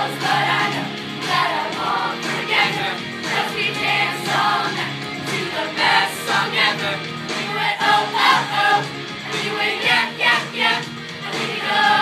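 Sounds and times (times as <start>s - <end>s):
children's choir singing: 0.0s - 12.0s
pop music accompaniment: 0.0s - 12.0s.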